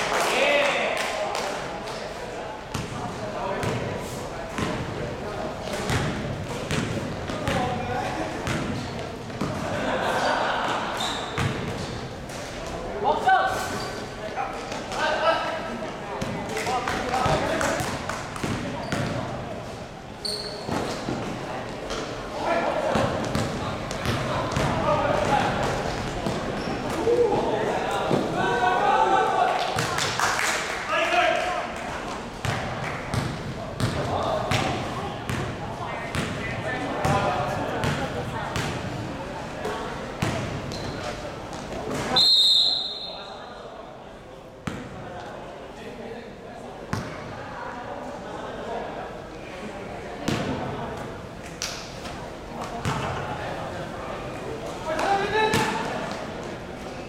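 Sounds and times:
players' voices: 0.0 - 57.0
basketball bouncing: 5.8 - 7.7, 22.9 - 25.4, 32.4 - 35.5, 36.1 - 36.4, 40.2 - 40.8
referee's whistle: 42.2 - 43.3.

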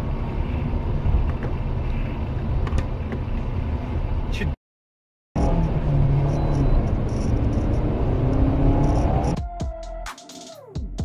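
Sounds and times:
car road and engine rumble: 0.0 - 4.6, 5.4 - 9.4.

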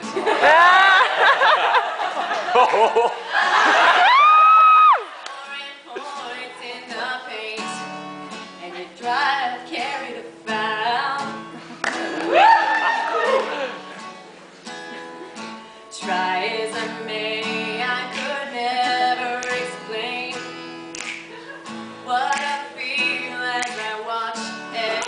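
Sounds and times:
acoustic guitar strumming chords: 5.9 - 12.3, 13.5 - 25.0.

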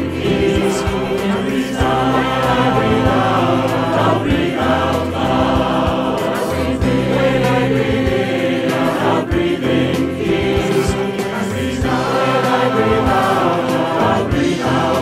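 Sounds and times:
choir singing in harmony: 0.0 - 15.0.

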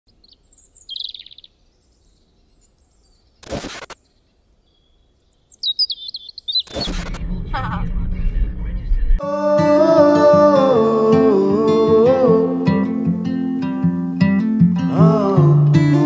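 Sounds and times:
small birds chirping: 0.1 - 7.1
bursts of noise: 3.4 - 4.0, 6.6 - 9.2
moving car interior rumble: 7.0 - 9.2.

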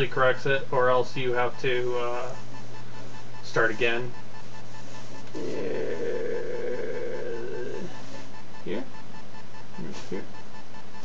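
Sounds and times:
low electrical hum: 0.0 - 11.0
man saying yeah: 5.4 - 7.9, 9.8 - 10.3.

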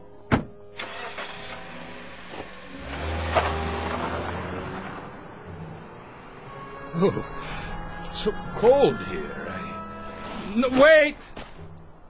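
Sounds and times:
car engine pulling away: 0.7 - 10.5.

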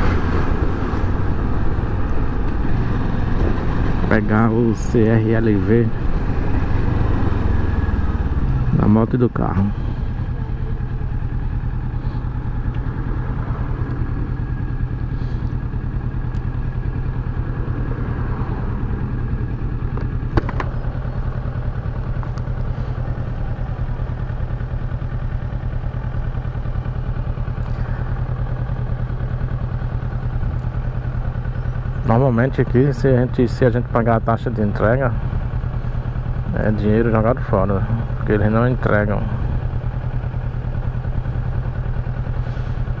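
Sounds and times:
motorcycle engine running: 0.0 - 43.0.

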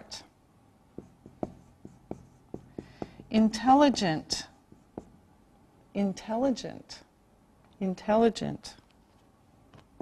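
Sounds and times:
marker writing on whiteboard: 1.0 - 5.2.

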